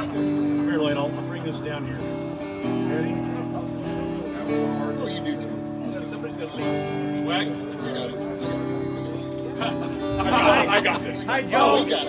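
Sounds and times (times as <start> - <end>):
people talking: 0.0 - 2.1, 2.7 - 12.0
electric guitar chords: 0.0 - 12.0.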